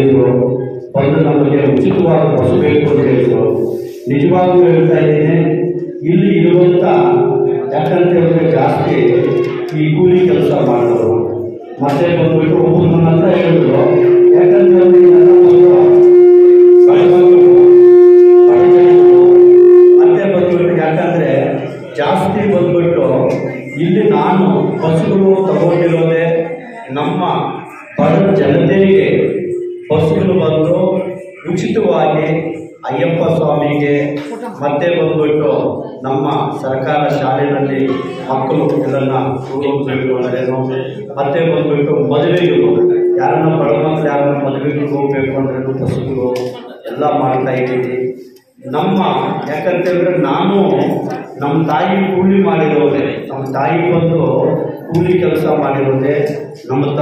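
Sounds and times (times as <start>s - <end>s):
loud held tone: 0.0s - 57.0s
man speaking into microphone: 0.0s - 57.0s
voices: 0.0s - 57.0s.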